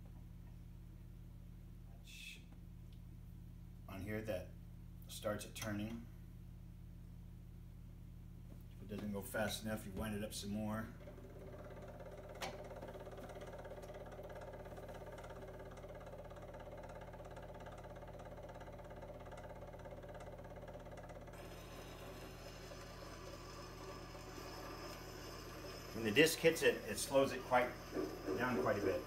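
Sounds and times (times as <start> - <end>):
phonograph motor humming: 8.9 - 29.0.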